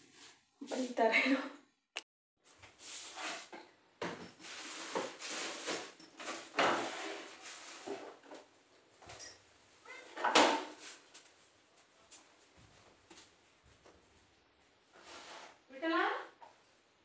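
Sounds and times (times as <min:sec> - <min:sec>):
objects knocking and scraping on shelves: 0:02.6 - 0:09.3, 0:10.0 - 0:11.0.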